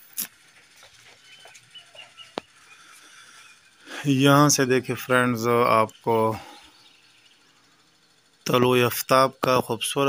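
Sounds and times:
man's voice: 3.9 - 6.5, 8.5 - 10.0.

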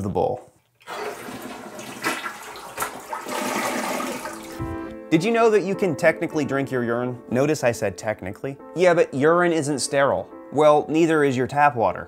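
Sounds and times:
toilet flushing: 0.8 - 4.9.

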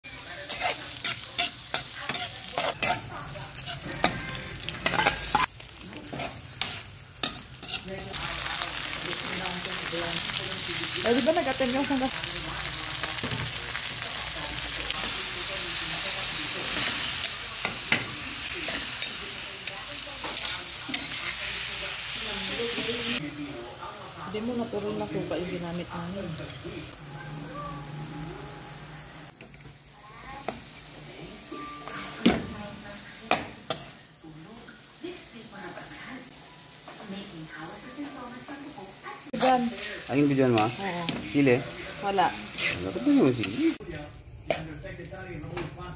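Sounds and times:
food frying in oil: 0.0 - 45.9
spatula scraping a wok: 0.1 - 8.2, 16.0 - 23.2, 30.2 - 32.3, 39.3 - 43.8.

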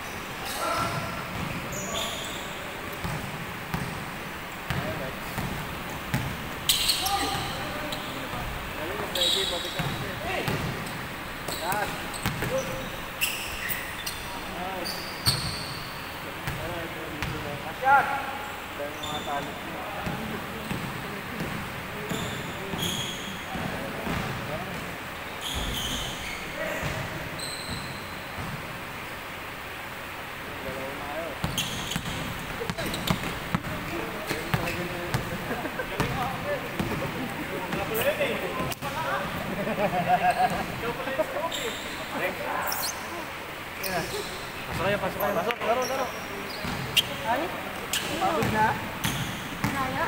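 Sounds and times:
sneaker squeaks: 0.0 - 4.0, 4.7 - 17.4, 18.9 - 20.9, 22.0 - 28.6, 31.4 - 35.3, 40.2 - 50.0
basketball bouncing on wooden court: 3.0 - 4.0, 4.7 - 6.4, 9.8 - 12.8, 23.6 - 24.4, 31.4 - 35.3, 36.8 - 37.1, 48.0 - 50.0.

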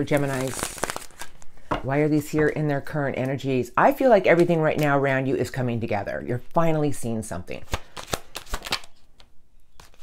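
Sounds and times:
cards being shuffled: 7.6 - 10.0.

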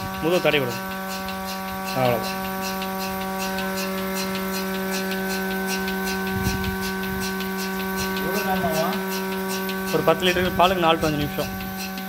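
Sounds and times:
milking machine humming and ticking: 0.0 - 12.0.

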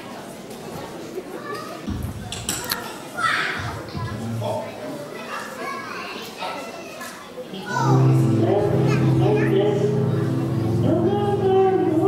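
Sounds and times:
children and adults chattering: 0.0 - 12.0
held instrument chord: 7.9 - 12.0.

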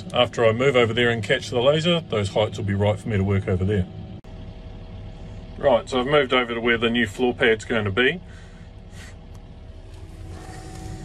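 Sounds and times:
diesel engine idling: 0.0 - 11.0
faint multi-tone hum: 0.0 - 11.0.

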